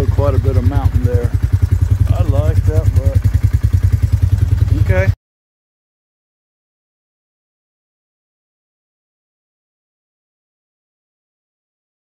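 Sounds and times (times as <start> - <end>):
atv engine idling: 0.0 - 5.2.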